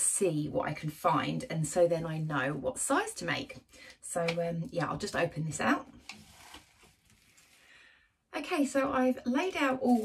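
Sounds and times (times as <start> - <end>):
paper envelope rustling: 5.9 - 7.7.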